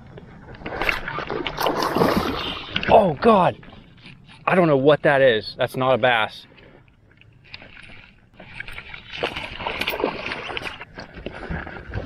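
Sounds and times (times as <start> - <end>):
water splashing beside kayak: 0.3 - 4.0, 7.3 - 12.0
fish thrashing at surface: 8.4 - 12.0.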